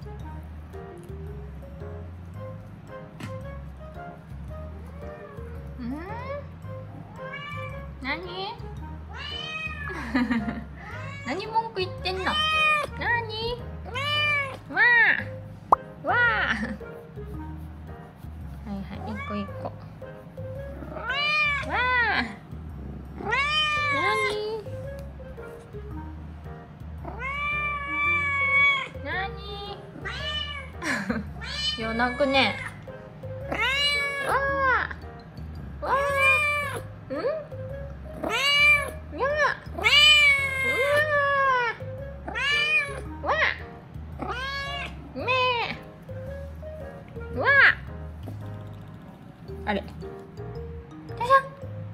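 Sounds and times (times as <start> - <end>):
background music: 0.0 - 51.9
cat meowing: 7.1 - 8.0, 9.1 - 10.0, 10.8 - 11.5, 12.2 - 13.0, 13.9 - 14.7, 19.0 - 19.8, 20.8 - 22.0, 23.2 - 24.7, 27.0 - 29.0, 30.0 - 30.8, 31.4 - 32.8, 33.5 - 34.8, 35.8 - 36.8, 38.2 - 39.0, 39.8 - 43.1, 44.2 - 45.6.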